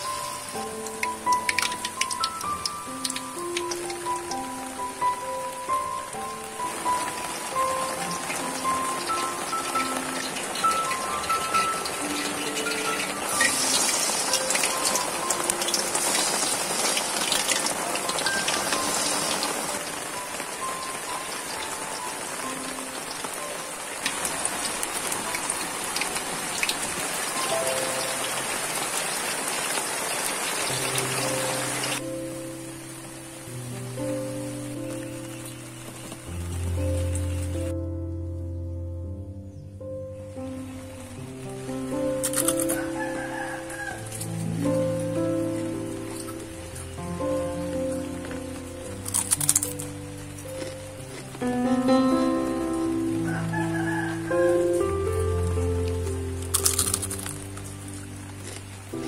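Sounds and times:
light background music: 0.0s - 29.0s, 30.7s - 59.0s
leaves deep-frying in oil: 0.0s - 37.7s, 40.5s - 59.0s.

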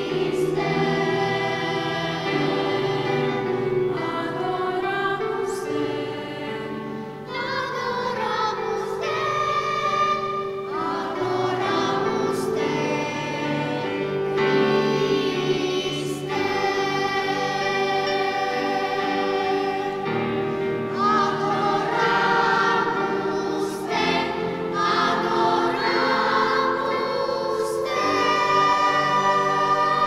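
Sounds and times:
choir singing: 0.0s - 30.0s.

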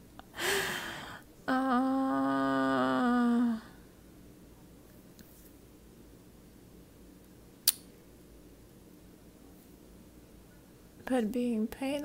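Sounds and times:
faint room hiss: 0.0s - 12.0s
sharp click: 7.6s - 7.9s.

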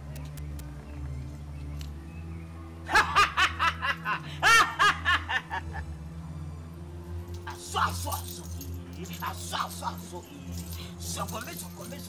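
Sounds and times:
man laughing: 2.9s - 5.8s.

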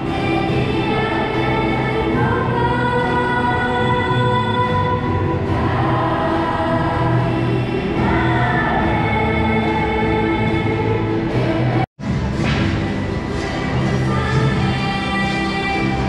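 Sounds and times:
choir singing slow hymn: 5.4s - 11.8s.

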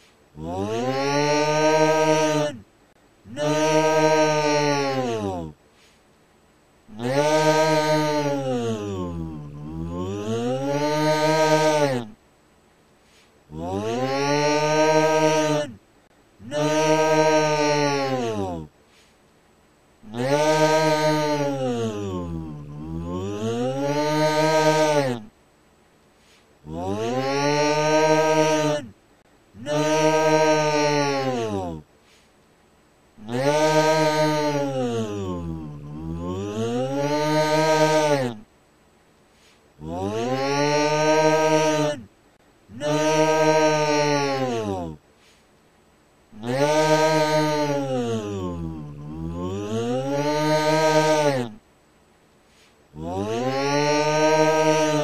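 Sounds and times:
creature's deep drawn-out yell: 0.4s - 2.7s, 3.3s - 5.6s, 6.9s - 12.2s, 13.5s - 15.8s, 16.4s - 18.7s, 20.0s - 25.3s, 26.6s - 29.0s, 29.6s - 31.9s, 33.2s - 38.5s, 39.8s - 42.1s, 42.7s - 45.0s, 46.4s - 51.6s, 53.0s - 55.0s.

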